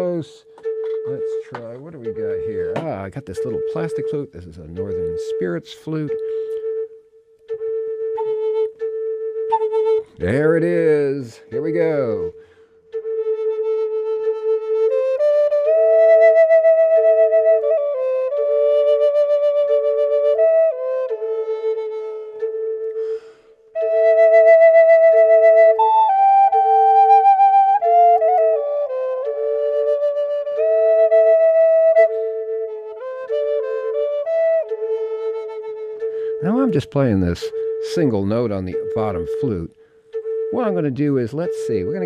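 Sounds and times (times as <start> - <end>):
flute drone note: 0.0 - 10.2
slow flute melody: 0.0 - 42.0.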